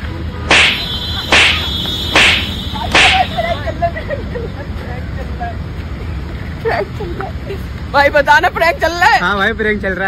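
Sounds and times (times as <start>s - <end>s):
sharp swishes through air: 0.5s - 3.4s.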